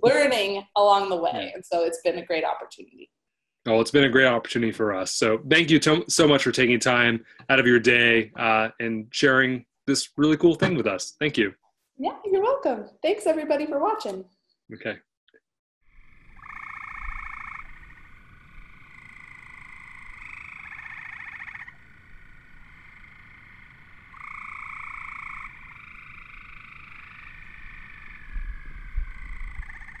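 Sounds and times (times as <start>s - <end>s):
frogs calling in pulsed trills: 15.9s - 30.0s.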